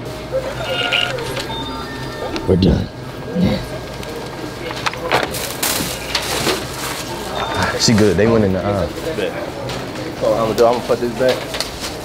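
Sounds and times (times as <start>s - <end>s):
short electronic beeps: 0.5s - 3.0s.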